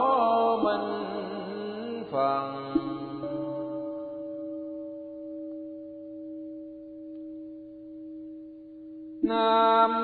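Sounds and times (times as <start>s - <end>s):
bowl bell ringing: 0.0s - 10.0s.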